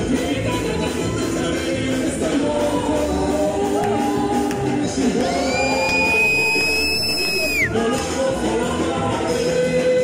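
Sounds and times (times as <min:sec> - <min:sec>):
latin gospel band with singing: 0:00.0 - 0:10.0.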